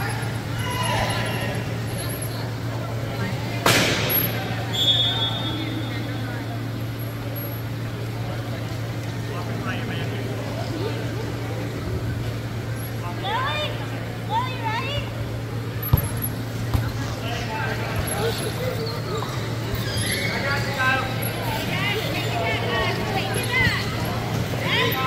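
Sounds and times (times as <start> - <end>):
voices in a hall: 0.0 - 25.0
high squeaks or calls: 18.8 - 21.3.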